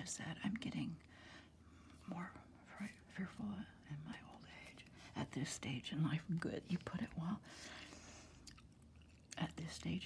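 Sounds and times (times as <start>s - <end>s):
woman whispering: 2.0s - 7.4s.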